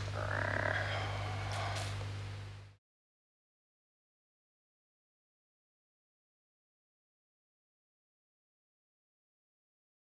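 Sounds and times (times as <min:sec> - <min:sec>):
guitar amplifier hum: 0:00.0 - 0:02.8.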